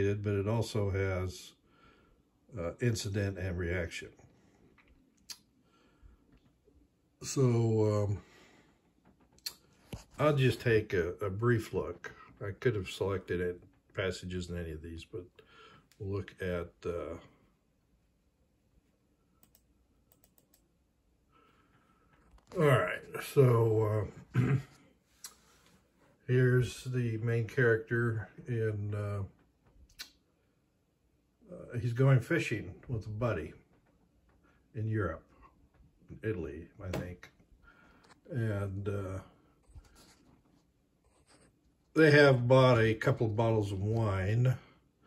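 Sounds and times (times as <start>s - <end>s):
faint keyboard keystrokes: 19.4s - 20.7s.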